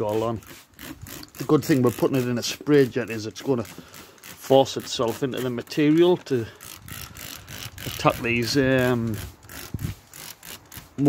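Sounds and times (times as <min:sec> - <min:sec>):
person speaking: 0:00.0 - 0:00.5, 0:01.2 - 0:09.4
spray bottle squirting: 0:00.0 - 0:11.0.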